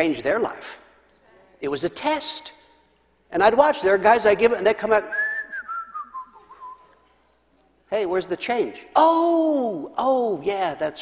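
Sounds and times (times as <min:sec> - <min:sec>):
man whistling a tune: 0:05.1 - 0:06.9.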